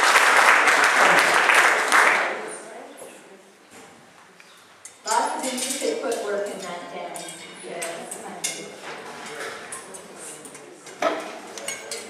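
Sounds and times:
chatter of many voices: 2.1 - 12.0.

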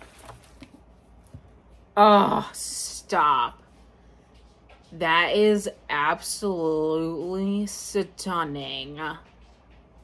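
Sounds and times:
paper rustling: 0.0 - 1.3.

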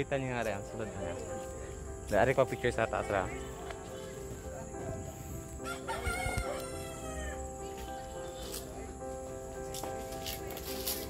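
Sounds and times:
background music: 0.0 - 11.0
rooster crowing: 5.6 - 7.6.

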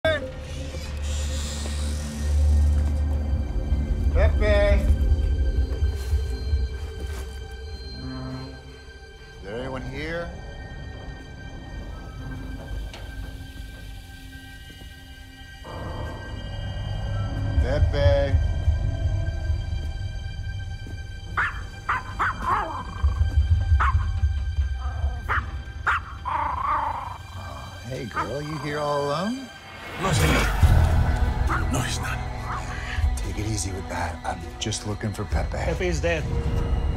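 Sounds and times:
ominous film score rumble: 0.0 - 36.9.

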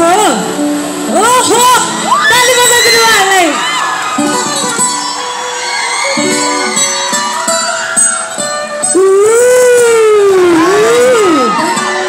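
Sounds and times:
dance music: 8.9 - 12.0.

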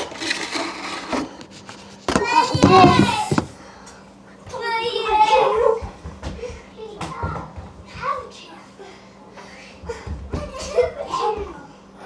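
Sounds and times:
child vocal sounds: 2.2 - 3.5.

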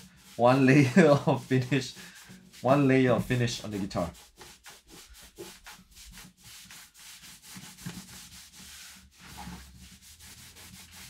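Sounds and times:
cloth rubbing on guitar: 0.0 - 11.0.

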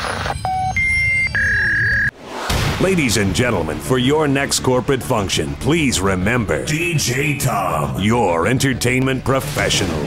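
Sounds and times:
electronic beep tones: 0.0 - 2.1
man announcing over music: 2.8 - 10.0.

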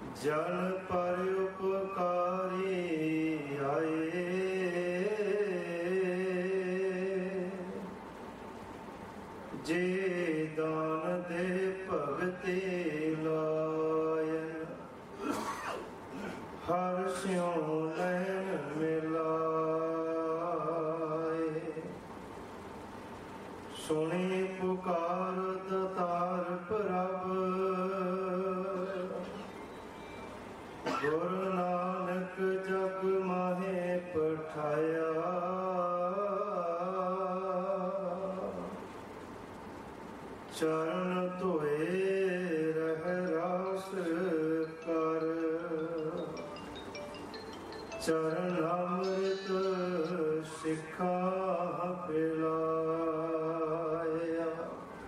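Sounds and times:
man chanting into microphone: 0.1 - 7.9, 9.6 - 14.9, 16.6 - 22.0, 23.7 - 29.4, 31.0 - 38.8, 40.5 - 46.2, 48.1 - 54.9
man chanting slowly: 16.6 - 22.0, 48.1 - 54.9.

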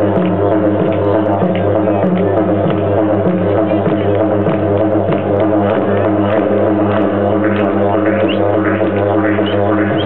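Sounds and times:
didgeridoo drone: 0.0 - 10.0.

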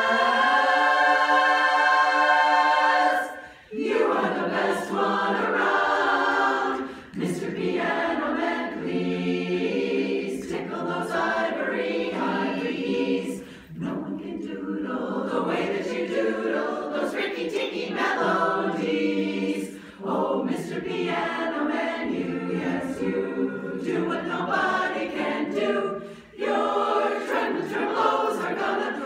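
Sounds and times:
women's chorus singing unaccompanied: 0.0 - 29.0.

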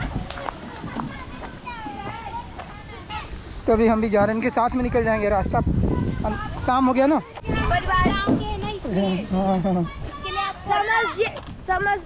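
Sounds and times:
group of people talking: 0.0 - 12.0.

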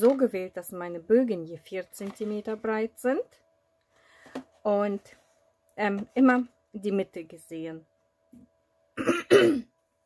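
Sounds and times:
woman clearing her throat: 9.0 - 9.7.

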